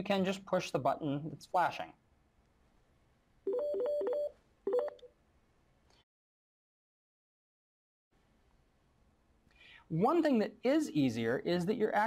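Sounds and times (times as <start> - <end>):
desk phone ringing: 3.5 - 5.1.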